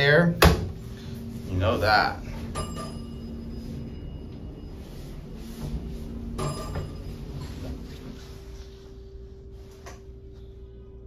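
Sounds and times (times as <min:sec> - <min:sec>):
elevator low hum: 0:00.0 - 0:11.0
thin ringing tone: 0:01.2 - 0:09.6.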